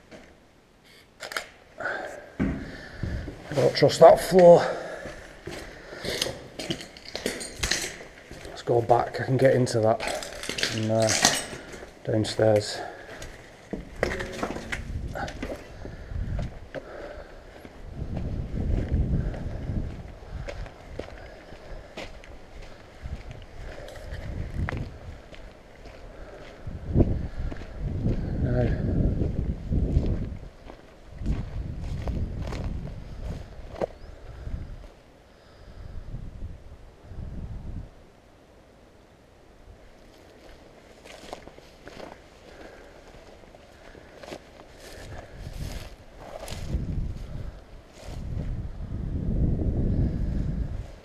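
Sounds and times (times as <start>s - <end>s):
footsteps on rough ground: 2.3s - 35.0s, 40.0s - 49.4s
wind rumbling on microphone: 2.6s - 4.4s, 13.7s - 38.1s, 39.6s - 51.0s.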